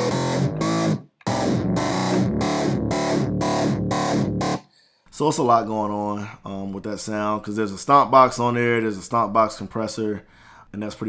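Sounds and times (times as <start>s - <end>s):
synth chord stabs: 0.0s - 4.6s.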